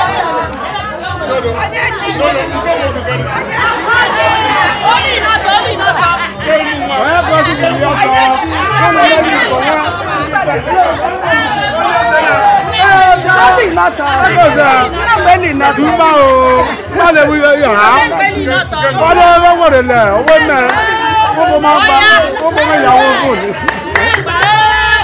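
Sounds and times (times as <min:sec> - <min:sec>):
women chattering loudly: 0:00.0 - 0:25.0
music with low repeating beat: 0:05.0 - 0:25.0.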